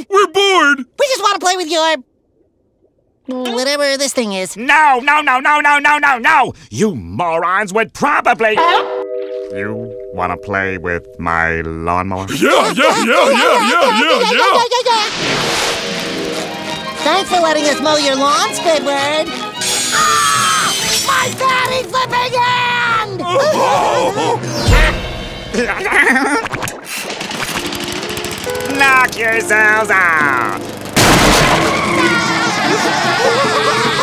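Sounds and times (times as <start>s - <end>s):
sustained music chord: 8.6s - 11.9s, 15.8s - 19.6s
background music: 8.6s - 14.4s, 15.2s - 23.3s, 24.3s - 26.0s
lawnmower engine: 15.8s - 19.9s, 27.1s - 34.0s
loud crash through wooden shed: 31.0s - 32.1s.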